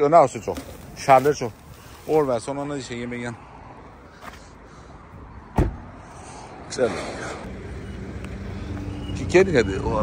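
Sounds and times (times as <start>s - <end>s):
vehicle rumble: 0.0s - 10.0s.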